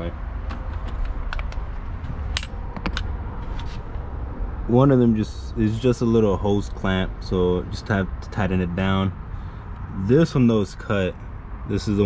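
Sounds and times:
handling clicks and knocks: 0.4 - 3.1.

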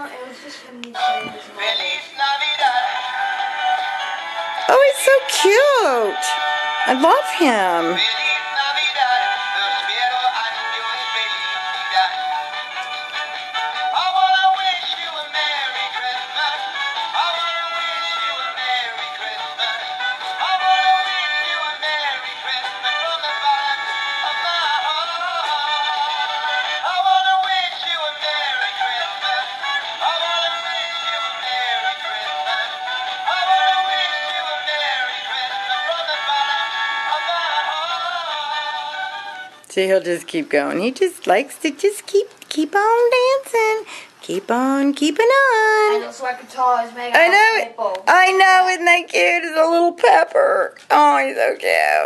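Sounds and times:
toy speaker playing song with singing: 1.0 - 39.6.

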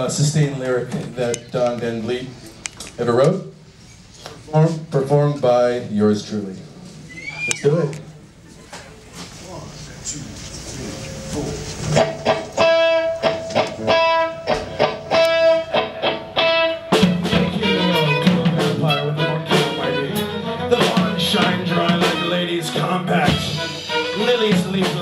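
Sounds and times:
full band playing: 11.0 - 25.0.

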